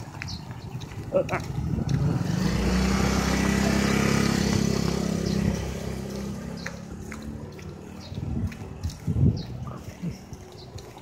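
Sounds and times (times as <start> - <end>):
motor scooter passing by: 1.4 - 10.3.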